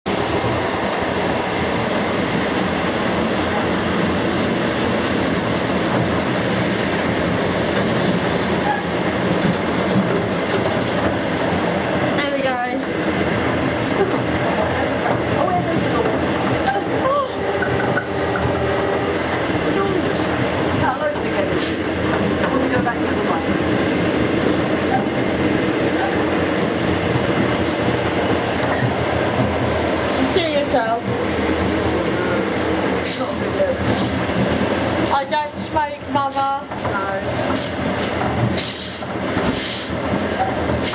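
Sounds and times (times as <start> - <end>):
train wheels running on track: 0.1 - 40.9.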